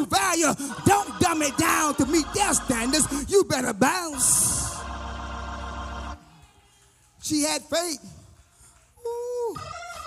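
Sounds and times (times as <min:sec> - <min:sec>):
keyboard chord with deep bass: 0:00.2 - 0:06.2.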